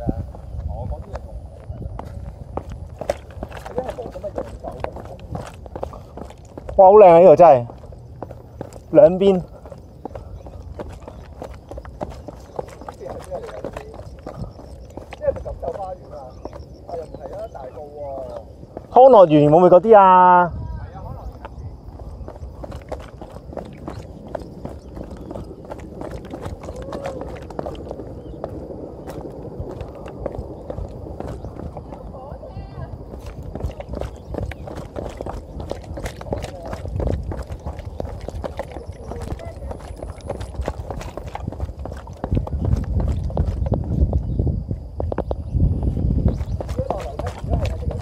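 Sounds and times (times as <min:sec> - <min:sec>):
quick footsteps on concrete: 0:00.0 - 0:20.5, 0:21.2 - 0:48.0
low rumble: 0:20.6 - 0:48.0.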